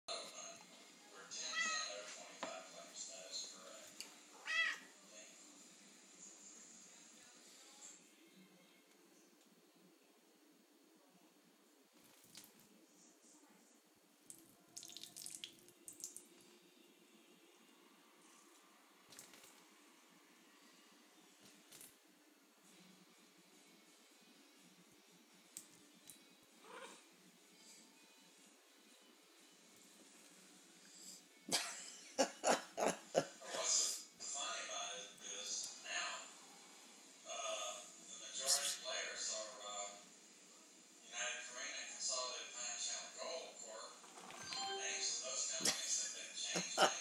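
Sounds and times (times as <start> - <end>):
cat meowing: 1.5 - 1.9, 4.4 - 4.9, 26.6 - 27.0.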